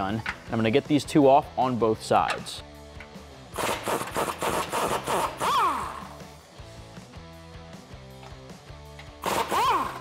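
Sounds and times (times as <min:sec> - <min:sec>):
background music: 0:00.0 - 0:10.0
pneumatic impact wrench rattling: 0:03.5 - 0:06.1, 0:09.0 - 0:10.0.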